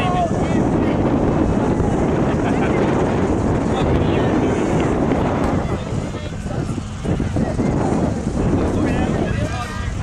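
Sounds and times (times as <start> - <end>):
faint distant voices: 0.0 - 10.0
wind buffeting microphone: 0.0 - 10.0.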